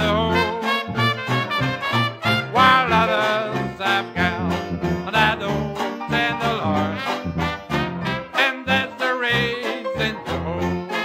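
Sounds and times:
dixieland jazz band playing: 0.0s - 11.0s.

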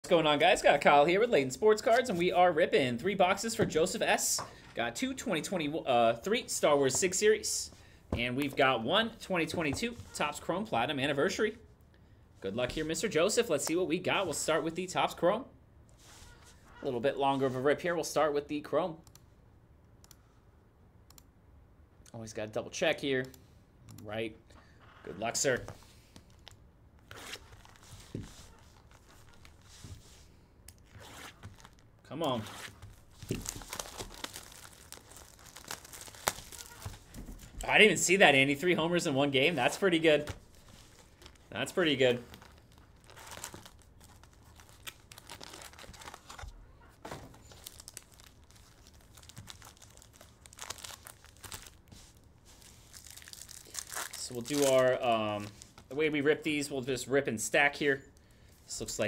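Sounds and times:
plastic shrink-wrap crinkling: 26.3s - 30.2s, 30.8s - 37.7s, 39.6s - 56.0s
foil pack tearing: 32.6s - 37.2s, 40.5s - 46.5s, 47.4s - 54.8s.

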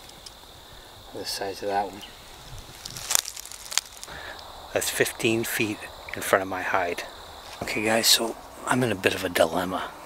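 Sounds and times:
crickets trilling: 0.0s - 10.0s
short sharp crackles: 2.6s - 4.4s.

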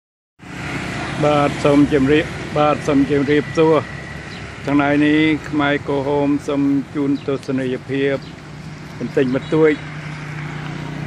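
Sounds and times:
motorbike traffic: 0.4s - 11.0s
person speaking: 8.9s - 9.9s.

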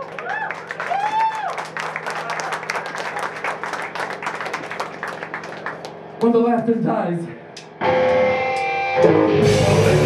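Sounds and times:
audience clapping: 0.0s - 6.4s.

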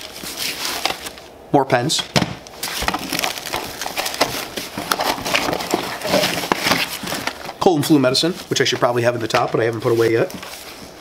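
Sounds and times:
cardboard box handling: 2.6s - 7.6s
rummaging in fabric bag: 2.6s - 11.0s.

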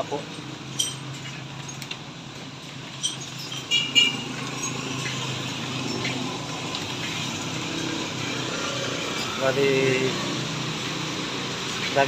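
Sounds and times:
sharp clinks: 0.2s - 2.0s, 2.8s - 6.7s
vehicle passing on wet road: 4.0s - 12.0s.

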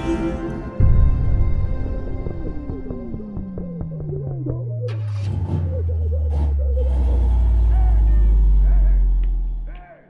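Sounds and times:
car engine droning: 0.0s - 10.0s
people's voices: 7.6s - 10.0s.

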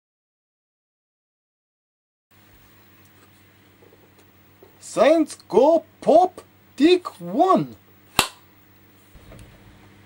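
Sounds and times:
clapperboard clap: 8.2s - 8.4s.

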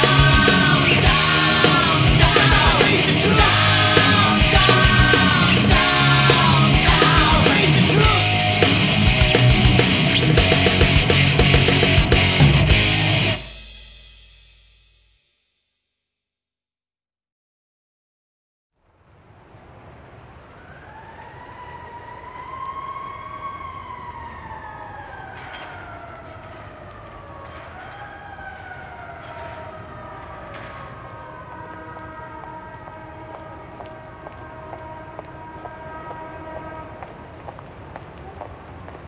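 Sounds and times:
siren-like wail: 0.0s - 13.6s, 19.8s - 37.4s
steady chord of held tones: 0.0s - 14.5s.

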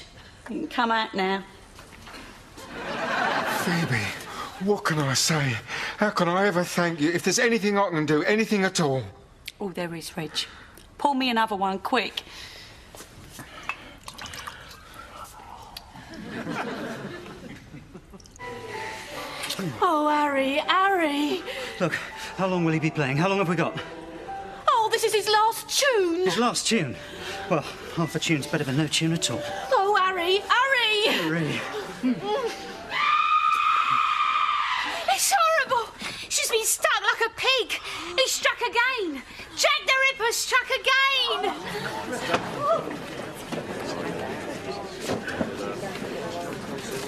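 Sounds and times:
woman screaming: 32.9s - 35.7s.

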